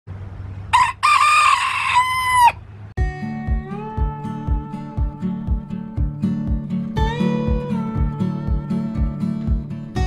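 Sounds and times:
rooster crowing: 0.7s - 2.6s
guitar music: 3.0s - 10.0s.

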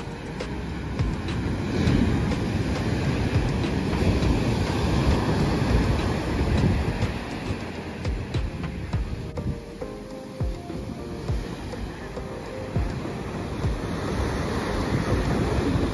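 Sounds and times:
ocean surf breaking: 0.0s - 15.9s.

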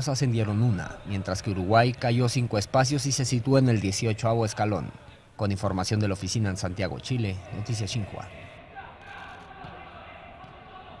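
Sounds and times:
faint voices of players: 6.4s - 11.0s.

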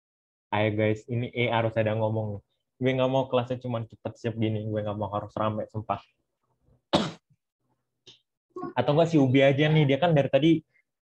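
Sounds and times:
person coughing: 6.9s - 7.2s.

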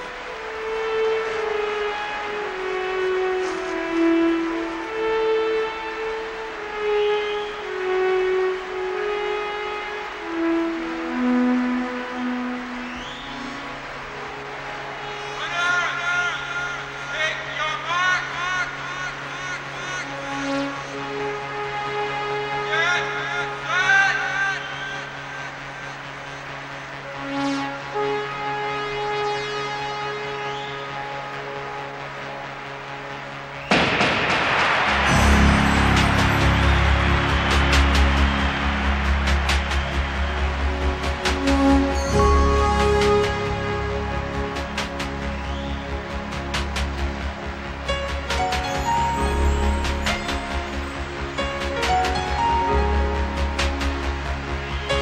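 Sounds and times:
slow melody of long held notes: 0.0s - 17.6s, 35.0s - 55.0s
loud crash: 33.7s - 40.3s
deep bass: 33.7s - 55.0s.

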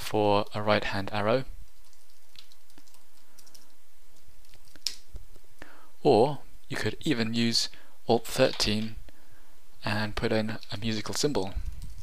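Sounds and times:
faint steady hiss: 0.0s - 12.0s
keyboard keys clicking: 1.8s - 3.7s.

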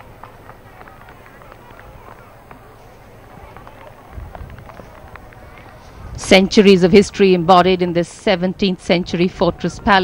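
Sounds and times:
murmur of distant crowd voices: 0.0s - 10.0s.

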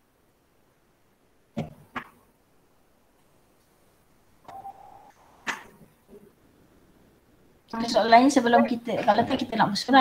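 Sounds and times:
short electronic beep: 4.5s - 5.1s.

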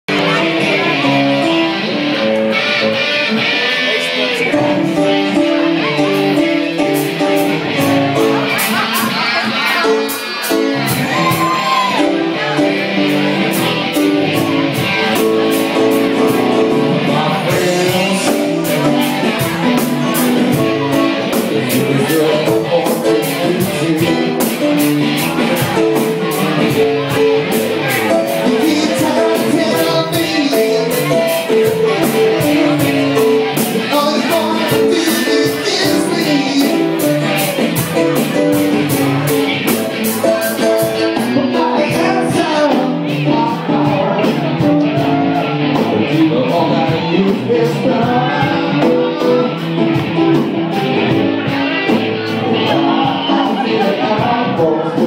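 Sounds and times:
plucked guitar notes: 0.1s - 55.0s
steady beat: 4.5s - 55.0s.

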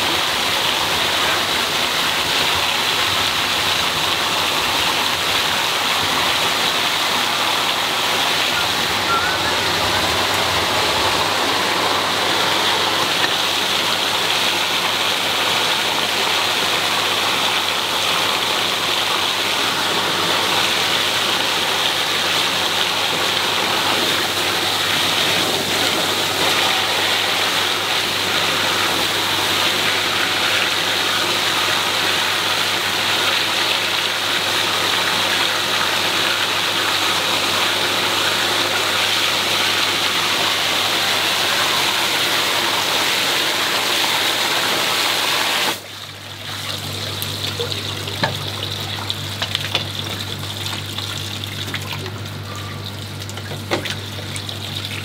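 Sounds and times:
water gushing from a pipe: 0.0s - 55.0s.

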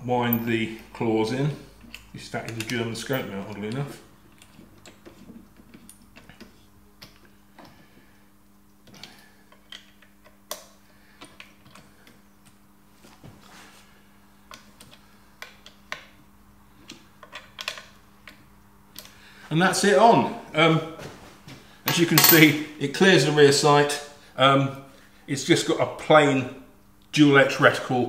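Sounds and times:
faint low hum: 0.0s - 28.0s.

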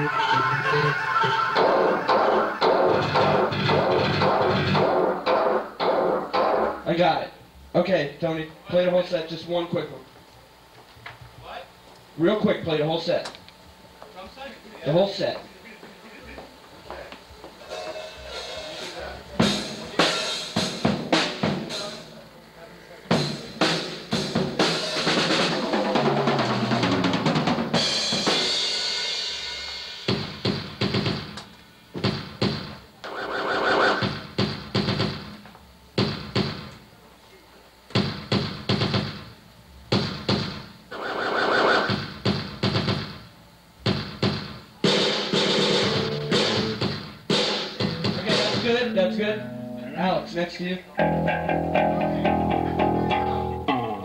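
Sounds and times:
snare and kick drum hits: 1.6s - 6.8s, 30.1s - 31.4s, 32.0s - 32.8s, 34.0s - 35.4s, 36.0s - 36.7s, 37.9s - 39.3s, 39.9s - 40.7s, 41.8s - 48.8s.

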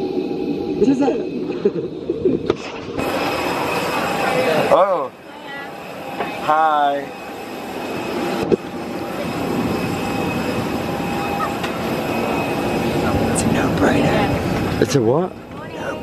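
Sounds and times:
airliner cabin hum: 0.0s - 16.0s.

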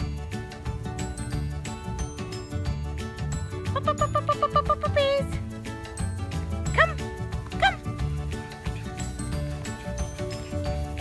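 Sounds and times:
background music: 0.0s - 11.0s
puppy yipping: 6.8s - 7.9s.

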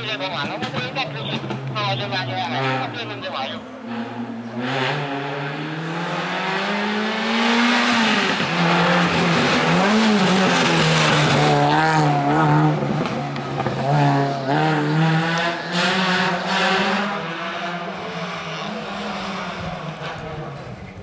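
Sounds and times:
car engine accelerating hard: 0.0s - 21.0s.

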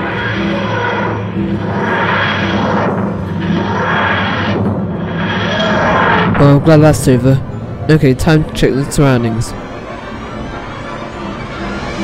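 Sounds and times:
rising wheezing swells: 0.0s - 6.4s
steady low drone: 0.0s - 12.0s.

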